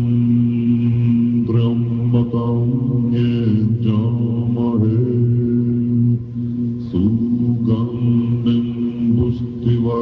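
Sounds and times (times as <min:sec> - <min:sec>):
monks chanting in low voices: 0:00.0 - 0:10.0.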